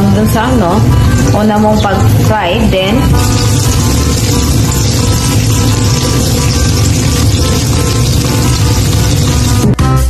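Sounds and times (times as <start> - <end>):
oil sizzling in a pan: 0.0 - 9.8
background music: 0.0 - 10.0.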